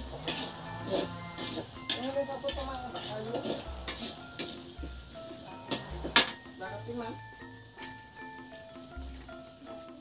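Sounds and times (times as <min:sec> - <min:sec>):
spatula scraping a wok: 0:00.0 - 0:08.2
food sizzling: 0:00.0 - 0:10.0
slow low-beat background music: 0:00.0 - 0:10.0.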